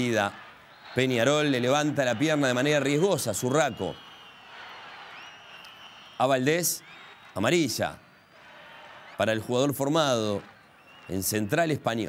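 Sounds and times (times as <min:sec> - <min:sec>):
faint stadium crowd ambience: 0:00.0 - 0:12.0.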